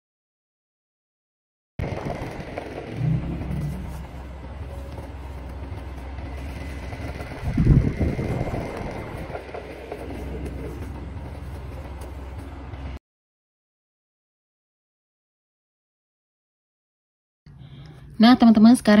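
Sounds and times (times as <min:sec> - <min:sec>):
low engine-like rumble: 0:01.8 - 0:13.0.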